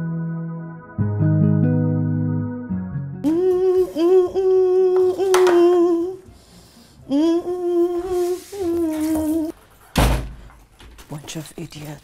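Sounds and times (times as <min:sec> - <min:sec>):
woman humming: 0:03.2 - 0:06.3, 0:07.0 - 0:09.5.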